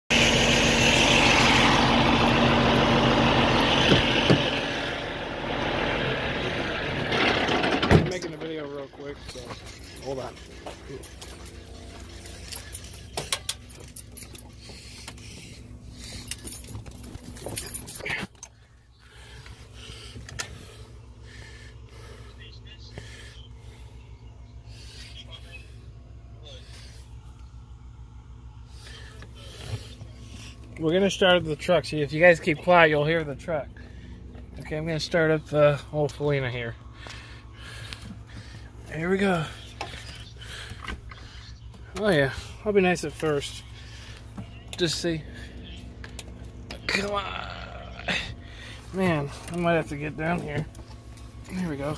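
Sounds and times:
truck diesel engine idling: 0:00.1 - 0:51.9.

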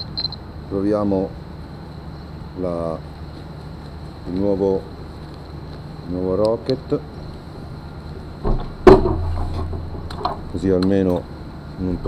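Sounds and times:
low steady hum: 0:00.0 - 0:12.0
soft thump: 0:08.4 - 0:10.1
loud sharp knock: 0:08.4 - 0:10.3.

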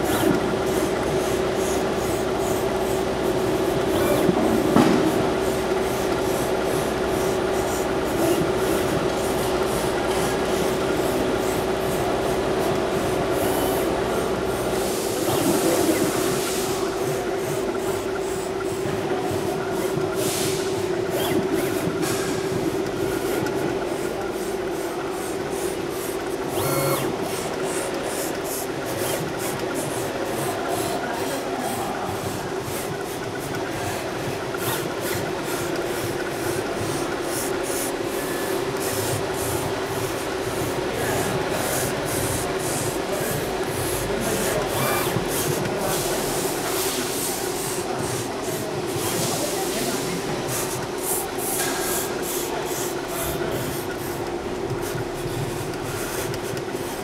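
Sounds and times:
plotter hum: 0:20.8 - 0:57.0
ticking of moving print head: 0:25.5 - 0:46.5, 0:50.4 - 0:57.0.

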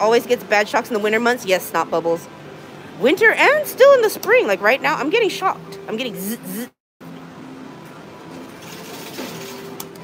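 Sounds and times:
prize-pusher machine clatter: 0:08.4 - 0:10.0.

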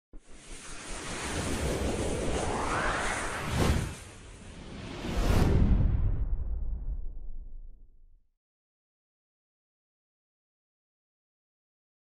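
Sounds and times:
rushing whoosh: 0:00.3 - 0:07.1.

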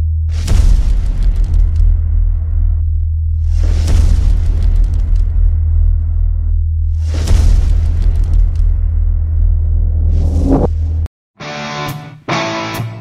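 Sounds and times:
booming hits: 0:00.0 - 0:11.1
deep rumbling drone: 0:00.0 - 0:11.1.

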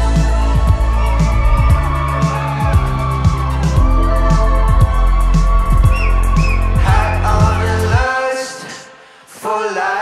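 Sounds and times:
live band playing: 0:03.5 - 0:07.8
high gliding notes: 0:03.6 - 0:07.9.

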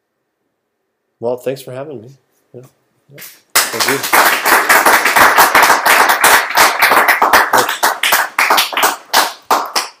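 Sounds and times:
audience applauding: 0:03.5 - 0:10.0.

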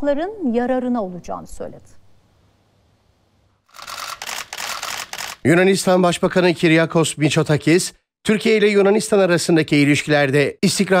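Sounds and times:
camera shutters clicking rapidly: 0:03.7 - 0:05.5.

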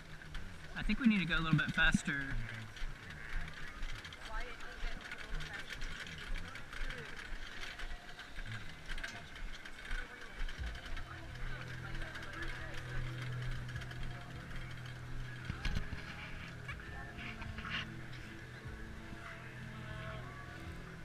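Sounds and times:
low steady hum: 0:00.0 - 0:21.0
metal cart rattling on turf: 0:00.0 - 0:21.0
people talking: 0:00.7 - 0:21.0.

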